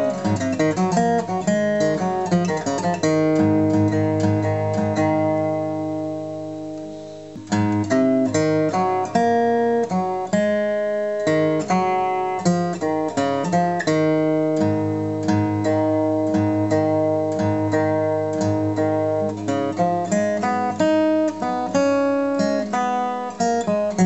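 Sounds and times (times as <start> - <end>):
fingerpicked acoustic guitar: 0.0 - 24.0.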